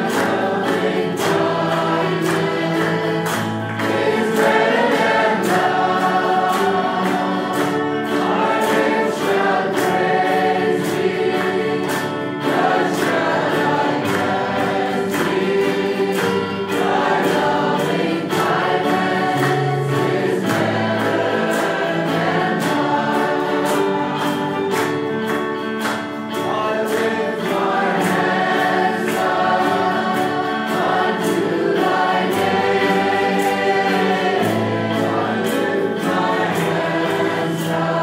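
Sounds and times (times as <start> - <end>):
choir singing gospel: 0.0 - 38.0.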